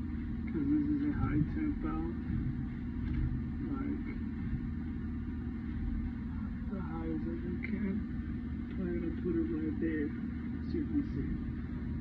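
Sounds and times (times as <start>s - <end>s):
low drone of machinery: 0.0s - 12.0s.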